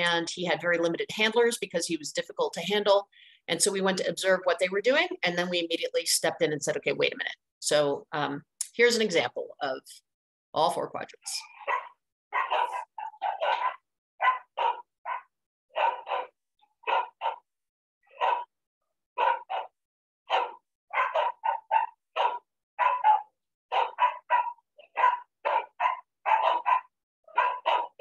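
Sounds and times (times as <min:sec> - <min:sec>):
dog barking: 0:11.6 - 0:17.4, 0:18.1 - 0:18.6, 0:19.2 - 0:28.0.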